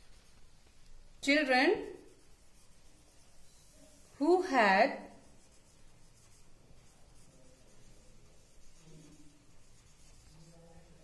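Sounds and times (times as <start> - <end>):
marker pen scratching on whiteboard: 0.0 - 11.0.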